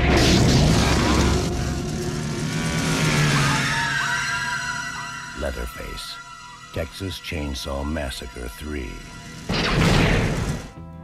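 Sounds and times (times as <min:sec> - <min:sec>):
deep rumble: 0:00.0 - 0:02.8
horror soundtrack music: 0:00.0 - 0:11.0
chainsaw engine revving: 0:00.7 - 0:03.8.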